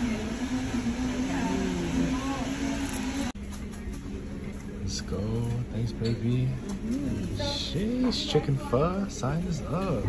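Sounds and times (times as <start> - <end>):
faint background voices: 0.0 - 10.0.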